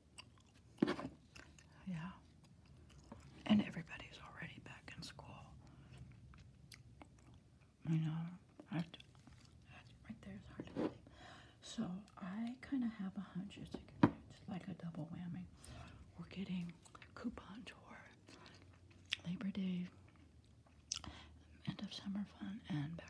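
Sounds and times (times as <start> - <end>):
person chewing gum: 0.0 - 3.8, 5.6 - 7.9, 18.1 - 19.4, 20.0 - 21.3.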